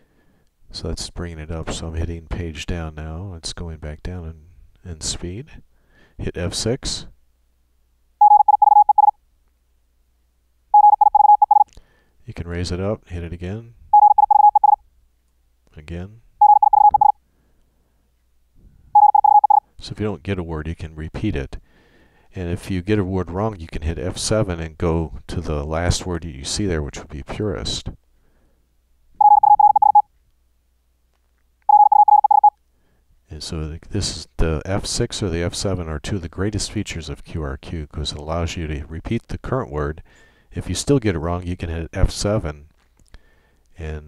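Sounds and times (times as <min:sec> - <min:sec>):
morse code tone: 0:08.2 - 0:09.2, 0:10.8 - 0:11.7, 0:13.9 - 0:14.8, 0:16.4 - 0:17.2, 0:19.0 - 0:19.6, 0:29.2 - 0:30.1, 0:31.7 - 0:32.5.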